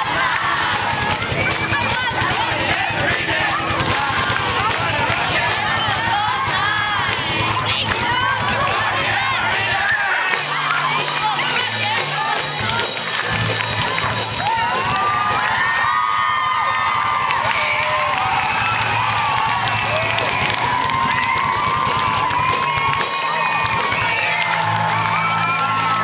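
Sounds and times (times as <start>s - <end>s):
children cheering and screaming: 0.0s - 26.0s.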